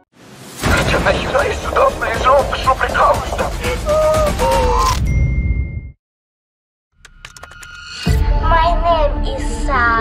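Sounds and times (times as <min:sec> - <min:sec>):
low boom: 0:00.6 - 0:03.7.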